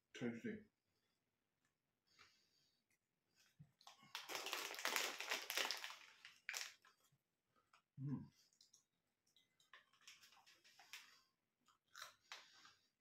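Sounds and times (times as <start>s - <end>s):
snack packet rustling and crackling: 3.8s - 7.1s, 9.4s - 13.0s.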